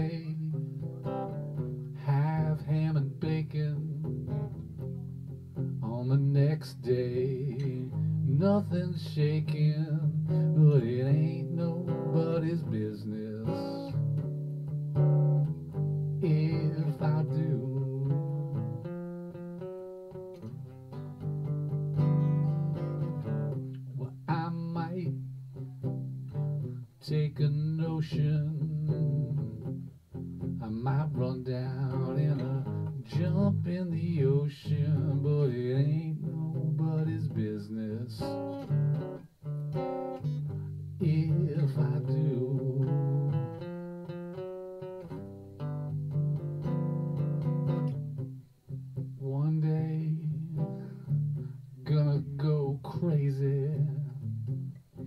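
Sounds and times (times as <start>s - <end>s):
person singing: 0.0s - 5.1s, 5.8s - 14.4s, 16.2s - 18.8s, 21.9s - 29.7s, 30.6s - 39.0s, 40.1s - 43.6s, 49.0s - 54.3s
acoustic guitar strumming: 0.0s - 55.0s.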